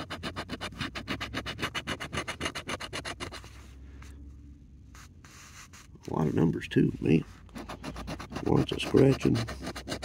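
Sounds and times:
coin scratching lottery ticket: 0:07.6 - 0:10.0.

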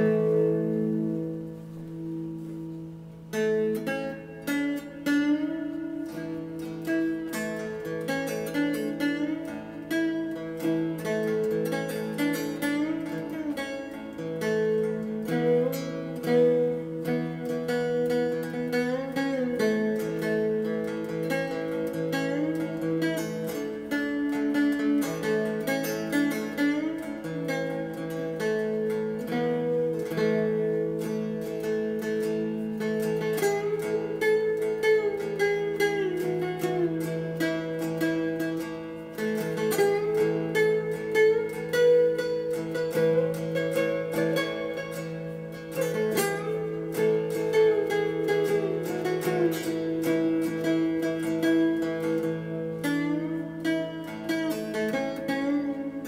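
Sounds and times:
cigar box guitar melody with slides: 0:00.0 - 0:56.0.

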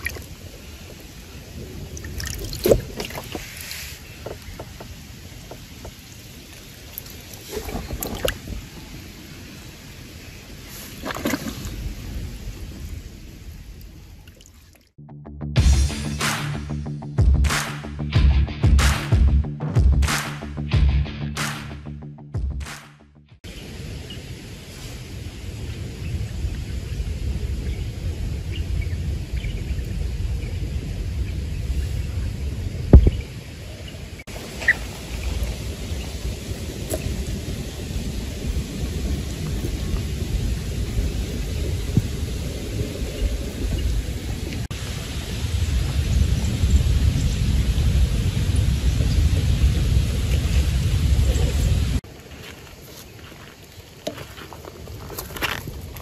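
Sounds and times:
wind buffeting microphone: 0:00.0 - 0:14.4, 0:23.5 - 0:52.1.

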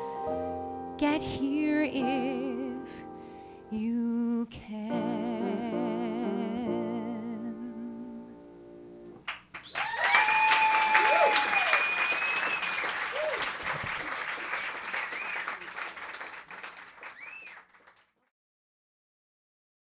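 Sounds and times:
audience applauding: 0:09.3 - 0:18.2
long held cries: 0:09.8 - 0:13.5.

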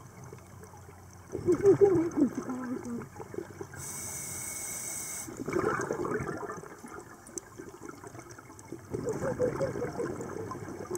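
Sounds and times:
underwater bubbles rushing: 0:00.0 - 0:03.8, 0:05.3 - 0:10.9.

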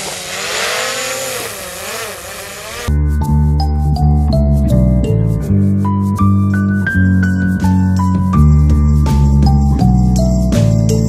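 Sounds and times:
drone propellers whining: 0:00.0 - 0:02.9.

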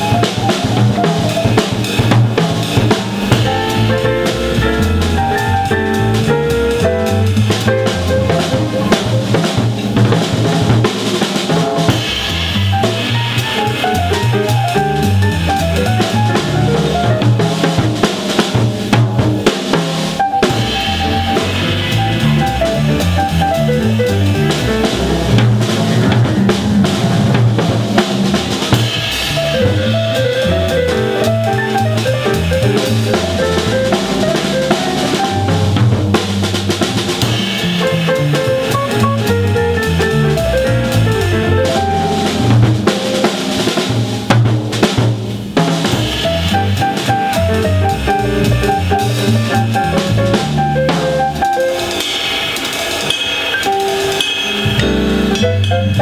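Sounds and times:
jazz piano trio playing: 0:00.0 - 0:56.0.

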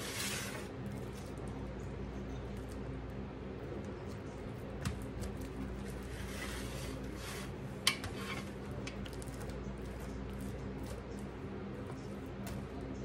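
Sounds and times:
spatula squishing and scraping: 0:00.0 - 0:01.4, 0:05.2 - 0:12.8
steady low hum: 0:00.0 - 0:13.0.

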